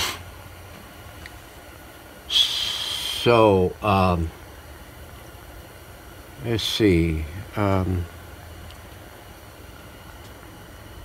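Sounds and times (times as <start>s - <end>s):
person speaking: 2.3s - 4.4s, 6.4s - 8.1s.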